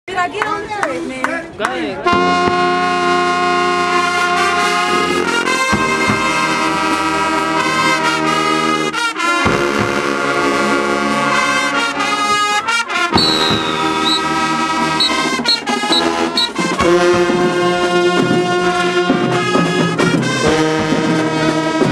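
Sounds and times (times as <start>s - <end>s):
marching band brass chords: 2.0s - 21.9s.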